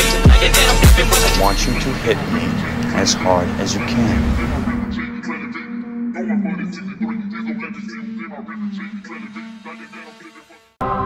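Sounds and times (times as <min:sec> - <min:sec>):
phonk music with heavy bass: 0:00.0 - 0:10.8
man speaking: 0:01.2 - 0:05.0.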